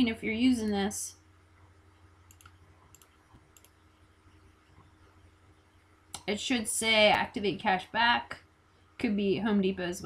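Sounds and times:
low steady hum: 0:00.0 - 0:10.0
computer mouse clicks: 0:02.2 - 0:03.8.

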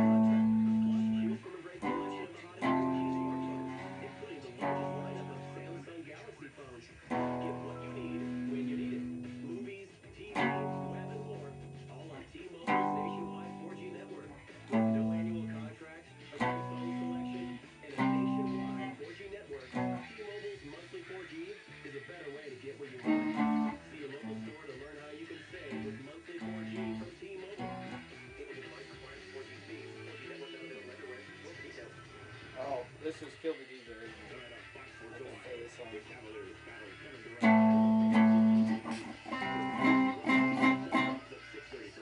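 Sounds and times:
electric guitar chords and notes: 0:00.0 - 0:05.9, 0:07.1 - 0:09.7, 0:10.3 - 0:15.7, 0:16.4 - 0:19.0, 0:19.7 - 0:20.2, 0:23.0 - 0:24.6, 0:25.6 - 0:28.4, 0:37.4 - 0:41.3.

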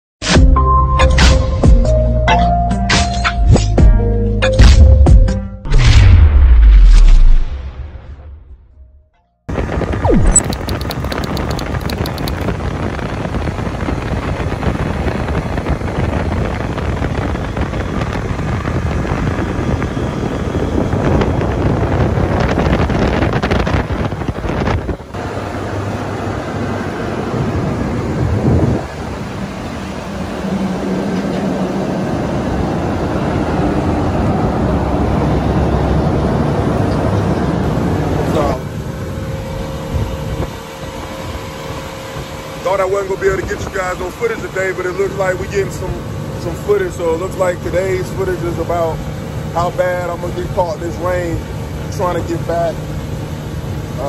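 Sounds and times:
wind buffeting microphone: 0:09.5 - 0:25.2, 0:27.1 - 0:38.3
outboard engine running: 0:10.0 - 0:28.7, 0:37.8 - 0:54.0.

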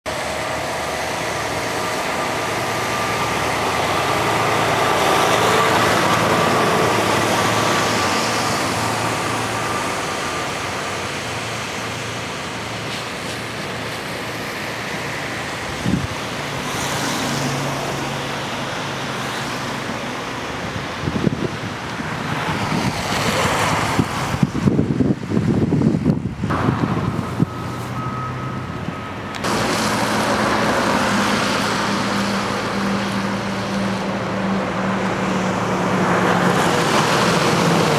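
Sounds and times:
road traffic going by: 0:00.0 - 0:37.9.

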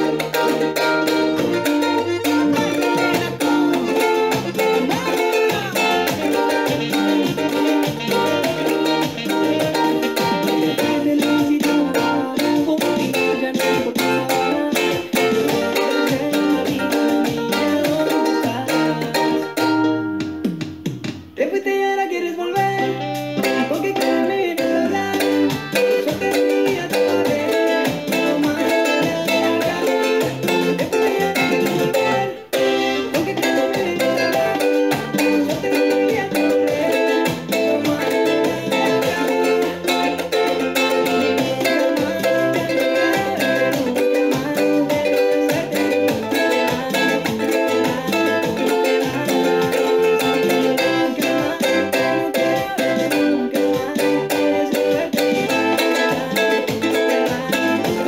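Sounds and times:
ukulele strumming: 0:00.0 - 0:58.0.

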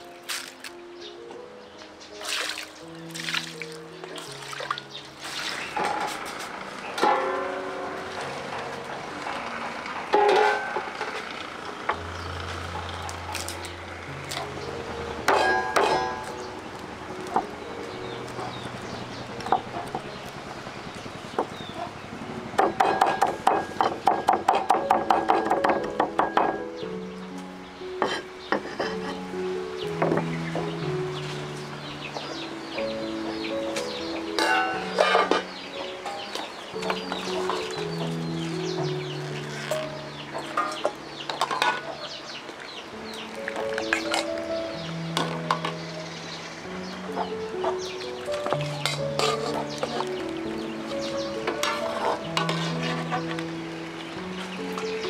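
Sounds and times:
background music with held notes: 0:00.0 - 0:55.0
cleaver chopping on wooden block: 0:22.6 - 0:26.6.

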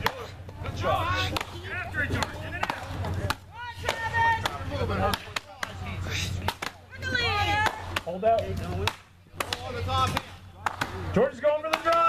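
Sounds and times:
axes chopping wood: 0:01.3 - 0:05.8.

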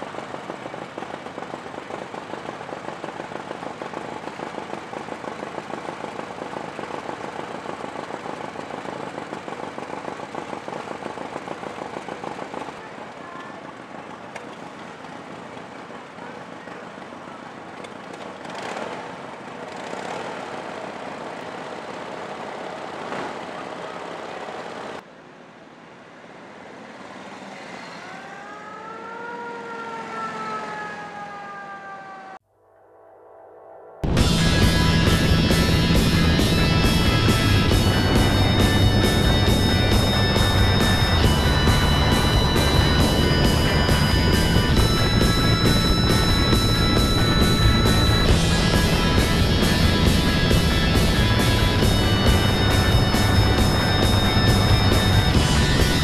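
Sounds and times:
motorcycle pulling away: 0:00.0 - 0:12.9, 0:13.8 - 0:24.0, 0:34.1 - 0:56.0
motorcycle engines running: 0:00.0 - 0:25.0, 0:34.0 - 0:56.0.

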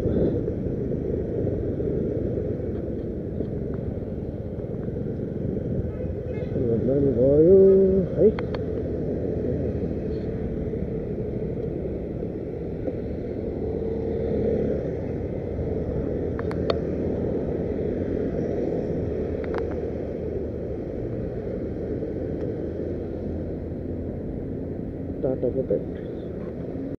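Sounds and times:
motorbike rumbling: 0:00.0 - 0:27.0
passing street traffic: 0:00.0 - 0:27.0.

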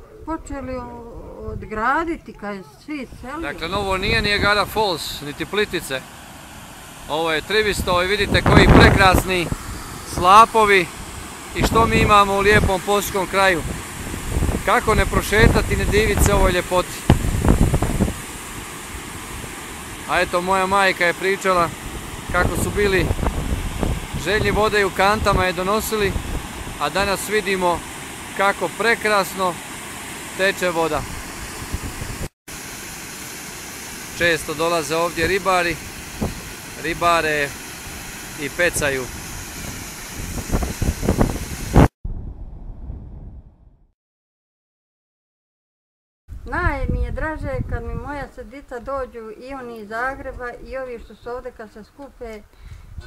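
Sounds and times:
wind buffeting microphone: 0:00.0 - 0:05.0, 0:07.4 - 0:20.9, 0:21.6 - 0:27.8, 0:30.9 - 0:32.3, 0:35.2 - 0:37.4, 0:38.4 - 0:43.7, 0:46.3 - 0:49.1, 0:52.6 - 0:53.0
water pouring over spillway: 0:03.8 - 0:31.1, 0:32.5 - 0:41.3.

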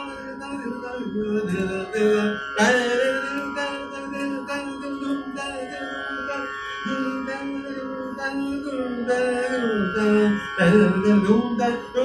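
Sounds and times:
harmonium chord: 0:00.0 - 0:12.0
man singing a held note: 0:00.0 - 0:12.0.

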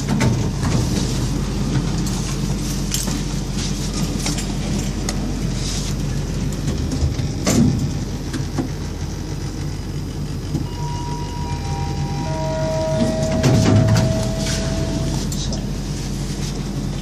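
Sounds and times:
lift car humming: 0:00.0 - 0:17.0
descending steady tones: 0:10.6 - 0:15.1.

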